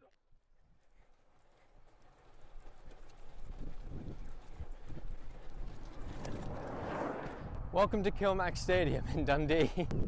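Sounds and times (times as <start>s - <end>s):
car approaching: 1.8s - 7.9s
wind buffeting microphone: 2.2s - 10.0s.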